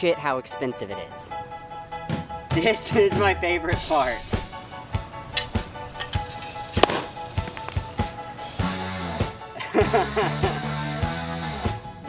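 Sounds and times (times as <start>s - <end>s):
background music with steady beat: 0.0s - 12.0s
sabre striking bottle neck: 5.3s - 8.0s.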